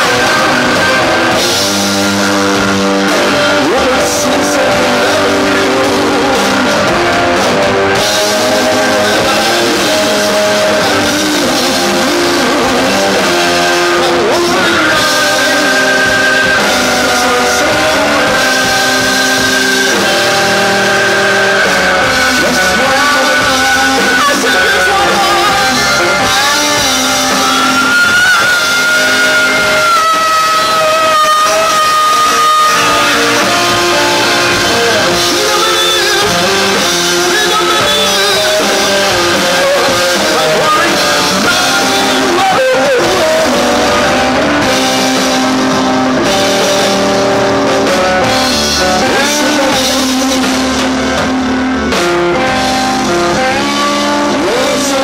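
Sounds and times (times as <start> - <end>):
drums and cymbals: 0.0 - 55.0
electric guitar: 0.0 - 55.0
rock band holding a high note: 0.0 - 55.0.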